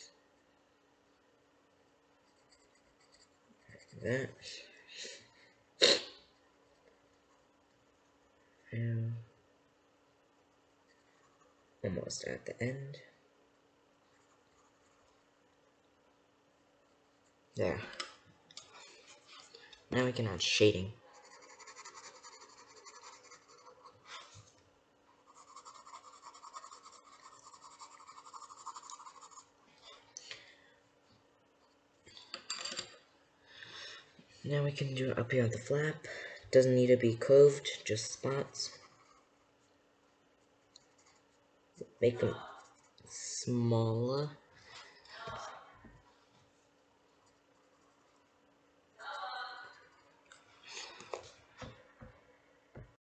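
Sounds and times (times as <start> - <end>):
pencil scratching on paper: 2.2 - 4.0, 21.1 - 24.3, 25.2 - 29.5, 38.7 - 39.4, 40.8 - 41.4
person sneezing or coughing: 5.8 - 6.2.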